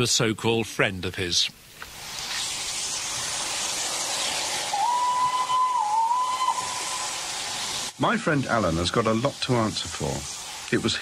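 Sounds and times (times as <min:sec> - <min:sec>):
steam hissing: 0:01.2 - 0:11.0
steam locomotive whistle: 0:04.7 - 0:07.4.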